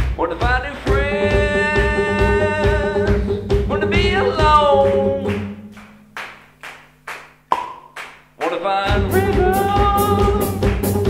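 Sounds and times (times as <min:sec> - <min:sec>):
person singing: 0:00.2 - 0:05.7, 0:08.4 - 0:11.0
live band playing: 0:00.5 - 0:05.8, 0:08.9 - 0:11.0.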